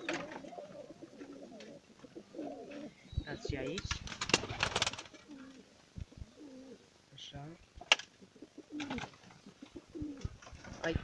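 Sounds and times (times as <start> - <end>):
pigeons cooing: 0.0 - 7.0, 7.8 - 11.0.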